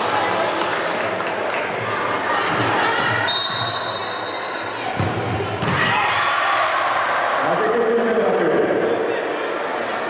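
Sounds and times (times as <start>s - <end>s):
voices echoing in hall: 0.0s - 10.0s
referee's whistle blast: 3.3s - 4.3s.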